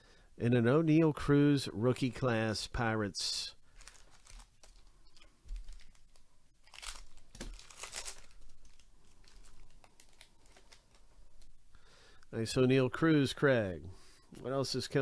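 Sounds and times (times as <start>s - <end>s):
foil wrapper tearing and crinkling: 3.8s - 4.9s, 5.5s - 11.0s.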